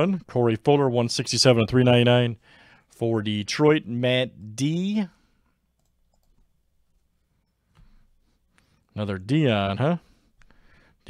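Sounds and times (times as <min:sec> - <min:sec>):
man speaking: 0:00.0 - 0:02.4, 0:03.0 - 0:05.2, 0:09.0 - 0:10.1.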